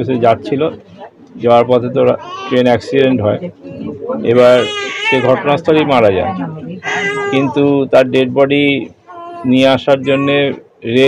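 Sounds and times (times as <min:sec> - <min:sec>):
man speaking: 0:00.0 - 0:00.8, 0:01.4 - 0:03.4, 0:04.2 - 0:06.4, 0:07.2 - 0:11.0.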